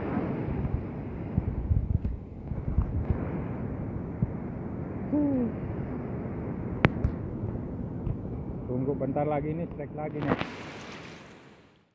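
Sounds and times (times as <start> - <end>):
wind buffeting microphone: 0.0 - 11.4
outdoor background hiss: 0.0 - 11.9.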